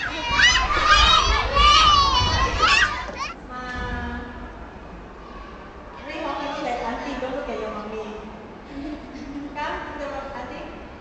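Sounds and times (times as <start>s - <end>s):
children calling and squealing: 0.0s - 3.5s, 5.0s - 6.2s.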